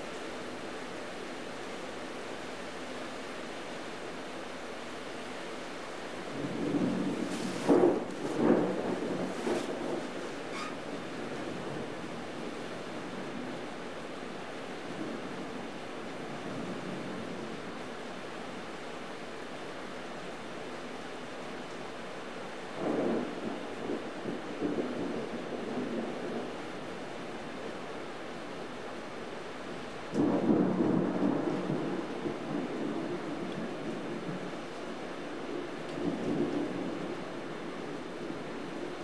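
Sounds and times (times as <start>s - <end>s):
steady rain: 0.0s - 39.0s
rain hissing: 5.3s - 11.9s
thunder rumbling: 6.3s - 12.6s, 22.8s - 26.5s, 30.1s - 34.5s, 35.8s - 39.0s.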